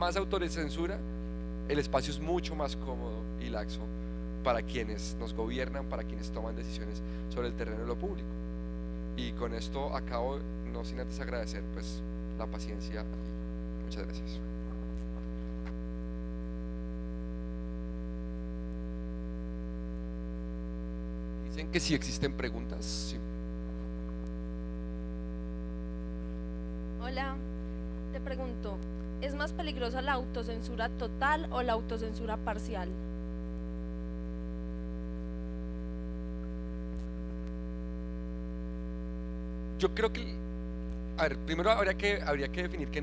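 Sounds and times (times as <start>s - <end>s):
electrical mains hum: 0.0s - 43.0s
microphone handling clicks: 14.6s - 15.9s.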